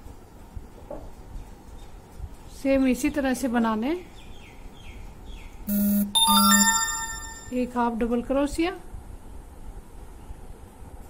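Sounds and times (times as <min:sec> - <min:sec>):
short low buzzing tone: 0:05.7 - 0:07.5
metallic bell ringing: 0:06.2 - 0:07.6.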